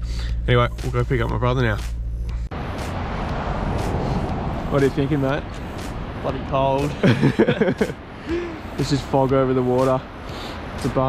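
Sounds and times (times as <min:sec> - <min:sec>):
wind rushing: 0:02.5 - 0:11.0
ocean surf: 0:02.6 - 0:11.0.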